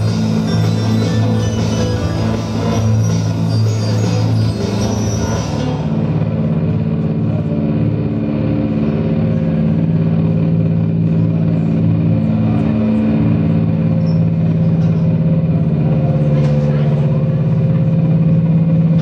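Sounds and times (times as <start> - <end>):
amplified band drone: 0.0 - 19.0.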